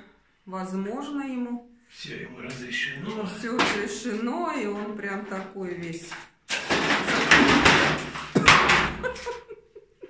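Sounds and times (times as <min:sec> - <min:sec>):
curtain hooks crashing and clattering: 0:03.2 - 0:09.4.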